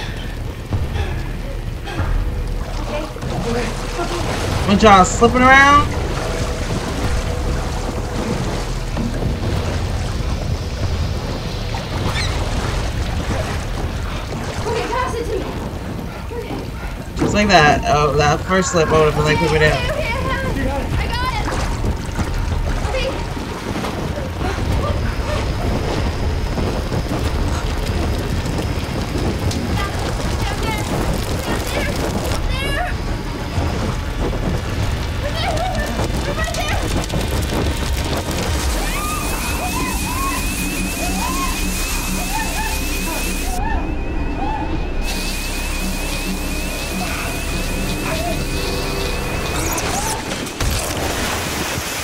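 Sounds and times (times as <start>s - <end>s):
music: 0.0s - 15.3s, 37.4s - 50.8s
people shouting: 14.6s - 22.2s, 35.2s - 50.6s
sprinkler spraying water: 34.5s - 43.6s, 45.0s - 49.9s
rapid high beeping: 38.9s - 43.6s, 44.9s - 50.2s.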